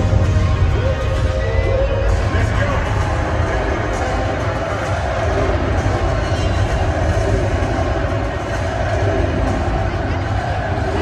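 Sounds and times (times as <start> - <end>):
booming bass-heavy soundtrack: 0.0 - 11.0.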